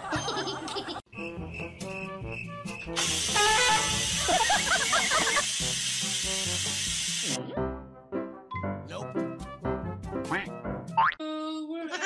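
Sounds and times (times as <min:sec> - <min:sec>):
rice cooker venting steam: 0:03.0 - 0:07.4.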